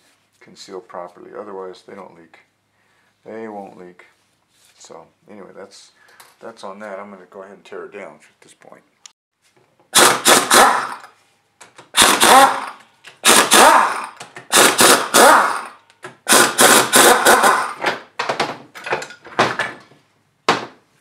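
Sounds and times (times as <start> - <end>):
pneumatic impact wrench hammering: 9.9 - 18.1.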